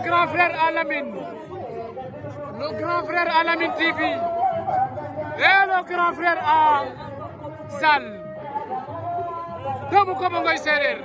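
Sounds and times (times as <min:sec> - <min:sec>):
loud speech: 0:00.0 - 0:11.0.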